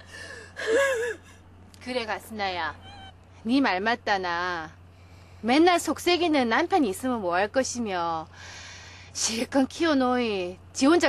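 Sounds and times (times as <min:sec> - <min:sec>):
woman crying: 0:00.0 - 0:01.4, 0:02.8 - 0:03.2.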